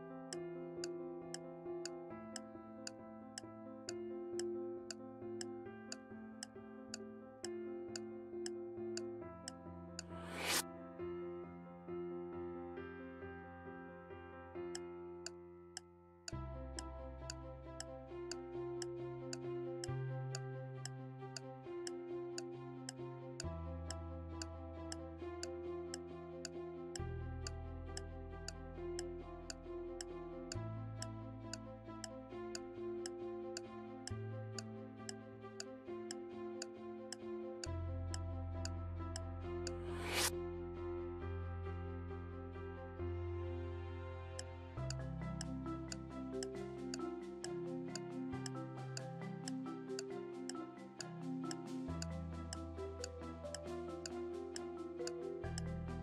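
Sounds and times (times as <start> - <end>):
background music with chords: 16.3 - 56.0
countdown timer ticks: 44.4 - 56.0.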